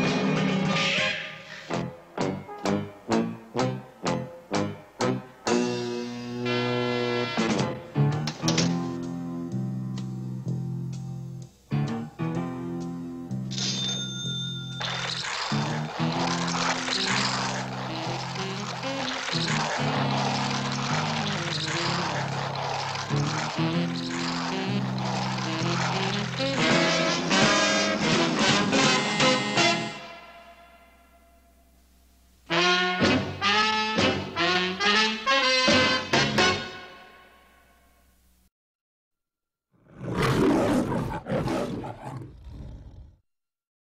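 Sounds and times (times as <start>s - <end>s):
lion roaring: 15.6s - 27.6s, 39.8s - 43.2s.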